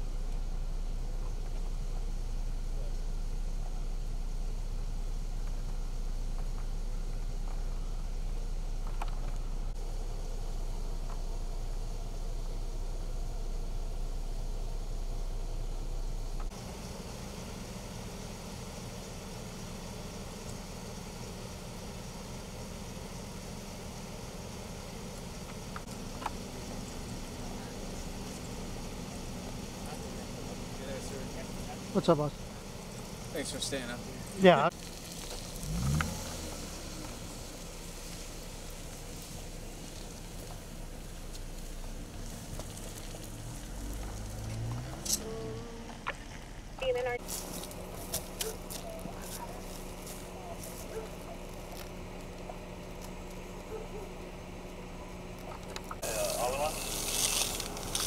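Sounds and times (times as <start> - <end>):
vehicle engine idling: 0.0 - 58.0
faint hiss: 16.3 - 46.1, 56.0 - 58.0.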